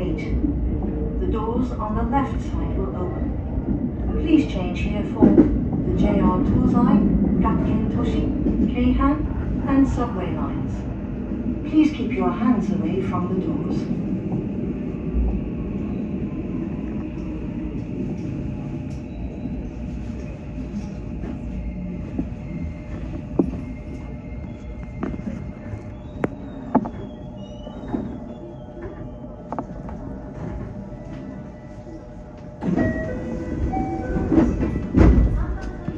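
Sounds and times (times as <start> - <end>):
electric train low rumble: 0.0 - 35.9.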